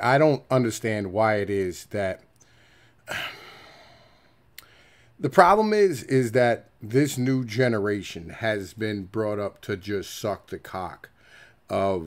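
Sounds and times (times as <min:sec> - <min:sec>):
man sighing: 0:02.8 - 0:05.1.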